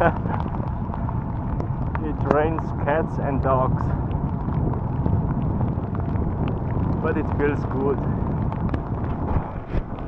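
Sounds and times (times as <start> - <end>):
rain ticking on camera: 0.0 - 10.0
wind rumbling on microphone: 0.0 - 10.0.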